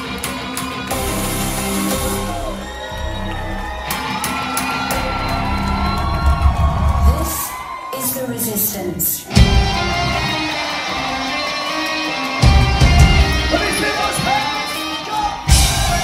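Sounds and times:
rock band playing live: 0.0 - 7.1, 9.2 - 16.0
crowd whooping and cheering: 0.0 - 16.0.

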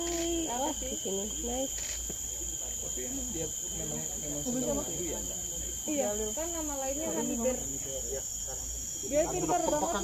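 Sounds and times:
insects chirring: 0.0 - 10.0
thin steady tone: 0.0 - 10.0.

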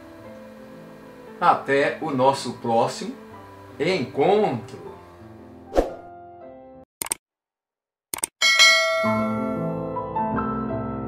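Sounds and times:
music: 0.0 - 6.9, 8.6 - 11.0
notification bell chime: 8.4 - 9.6.

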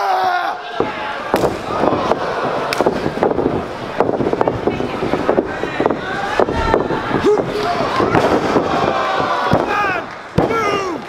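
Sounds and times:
crowd noise echoing: 0.0 - 11.0
bodies hitting wrestling ring: 0.8 - 10.8.

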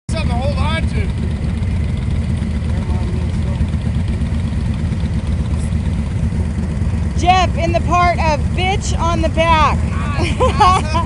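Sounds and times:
motorcycle engine idling: 0.1 - 11.0.

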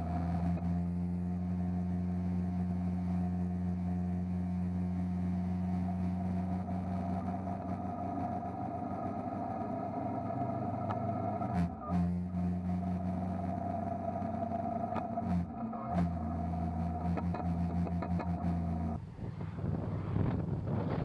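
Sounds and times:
motorcycle engine running steadily: 0.0 - 11.0, 11.6 - 21.0.

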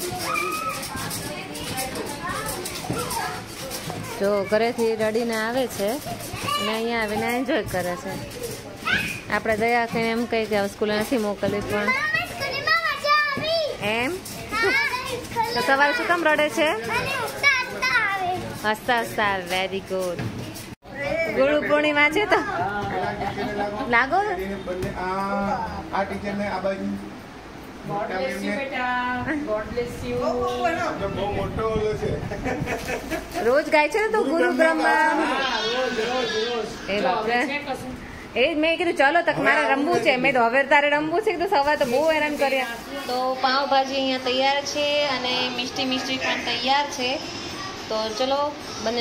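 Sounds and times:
children shouting in play: 0.0 - 4.2, 8.4 - 9.3, 34.8 - 37.2
girl talking: 6.4 - 7.4, 11.7 - 13.9, 14.5 - 16.2.

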